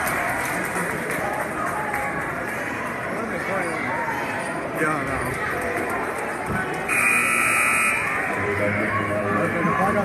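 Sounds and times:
crowd chatter: 0:00.0 - 0:10.0
scoreboard buzzer: 0:06.9 - 0:08.3.

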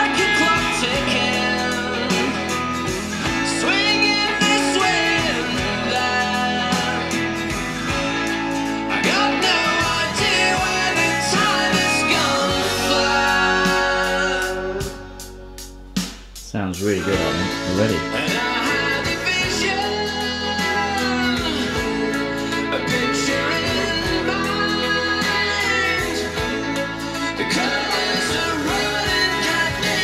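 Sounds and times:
guitar and singing music: 0:00.0 - 0:30.0.

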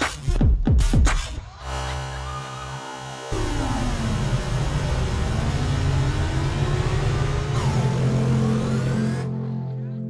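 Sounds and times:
low drone: 0:01.7 - 0:10.0
rising tones: 0:02.1 - 0:09.7
engine-like electronic rumble: 0:02.4 - 0:09.9.

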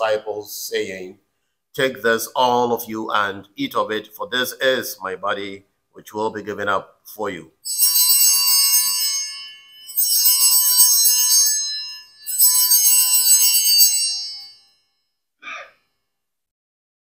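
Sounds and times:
small bells jingling: 0:07.6 - 0:15.0.

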